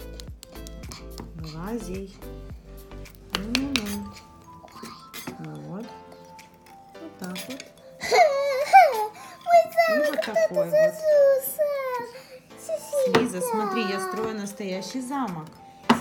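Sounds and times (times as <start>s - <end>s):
background music with held notes: 0.0s - 16.0s
small child's voice: 9.4s - 14.3s.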